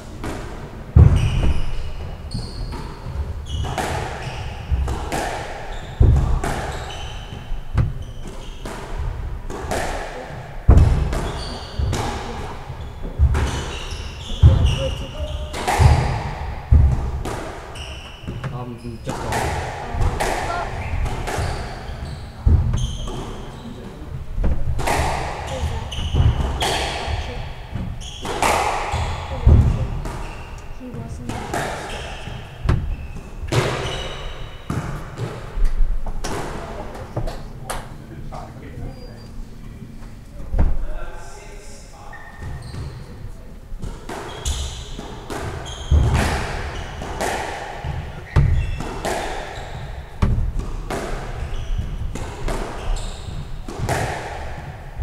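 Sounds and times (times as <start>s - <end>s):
squash ball hitting rackets and walls: 0.0s - 37.9s, 42.2s - 55.0s
shoes squeaking on wooden floor: 0.8s - 37.6s, 38.3s - 41.1s, 41.9s - 55.0s.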